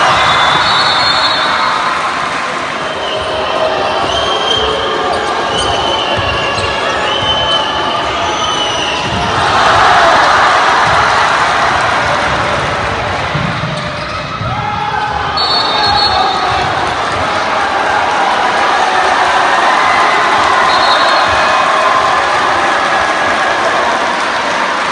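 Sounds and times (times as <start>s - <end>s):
crowd voices: 0.0s - 24.9s
sneakers squeaking: 2.8s - 9.5s, 13.6s - 17.2s.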